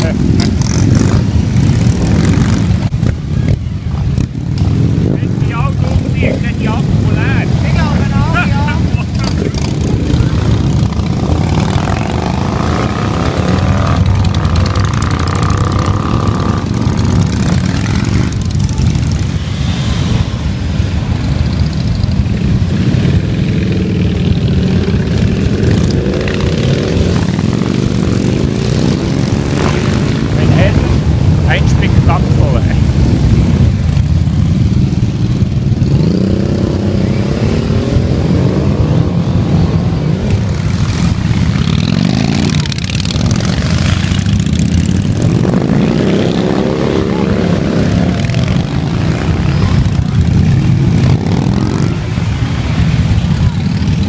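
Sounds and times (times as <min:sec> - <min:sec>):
motorcycles riding past: 0:00.0 - 0:54.0.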